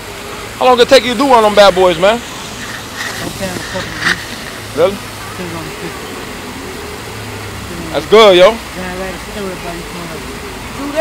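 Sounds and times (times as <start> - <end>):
faint voices talking: 0.2 - 11.0.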